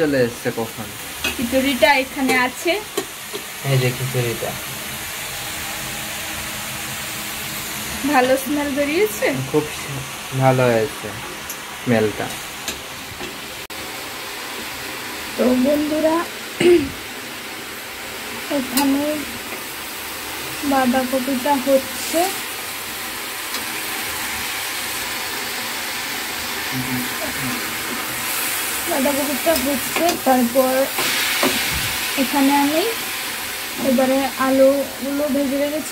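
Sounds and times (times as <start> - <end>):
cabbage sizzling in a pan: 0.0 - 35.9.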